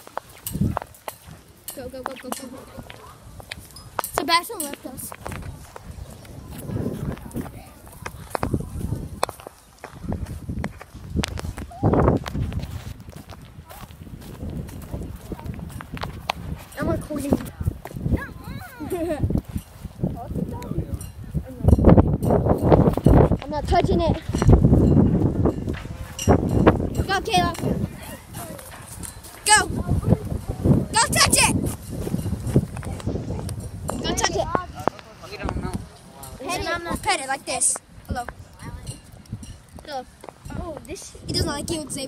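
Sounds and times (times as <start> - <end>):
footsteps on grass: 0.0 - 20.6
child shouting: 18.2 - 18.9, 29.5 - 30.0, 30.9 - 31.6.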